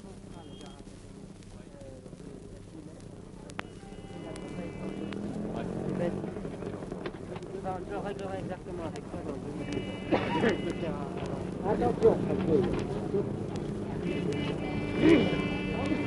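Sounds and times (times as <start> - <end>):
indistinct voices talking: 0.0 - 16.0
old radio hum and hiss: 0.0 - 16.0.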